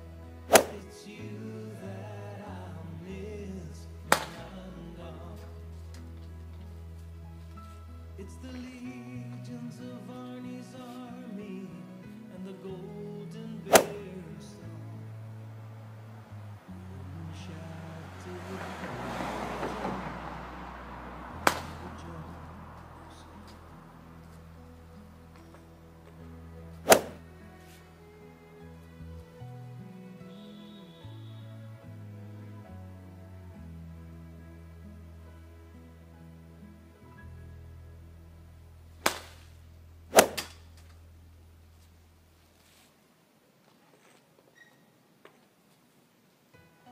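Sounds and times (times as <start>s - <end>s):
soft background music: 0.0s - 40.4s, 46.5s - 46.9s
club striking golf ball: 0.5s - 0.8s, 13.7s - 14.0s, 21.4s - 21.8s, 26.8s - 27.2s, 39.0s - 39.4s, 40.1s - 40.6s
golf club swishing through air: 0.5s - 0.8s, 13.7s - 14.0s, 21.4s - 21.8s, 26.8s - 27.8s, 39.0s - 39.5s, 40.1s - 40.6s.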